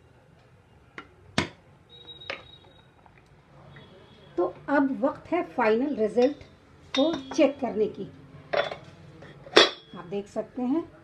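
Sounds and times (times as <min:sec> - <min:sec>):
short high-pitched beep: 0:01.9 - 0:02.9
wooden spoon striking pot: 0:06.1 - 0:07.5.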